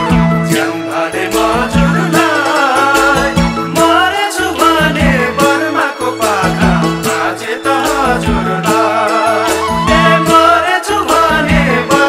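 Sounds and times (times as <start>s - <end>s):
steady percussion beat: 0.0s - 12.0s
voices singing a melody: 0.0s - 12.0s.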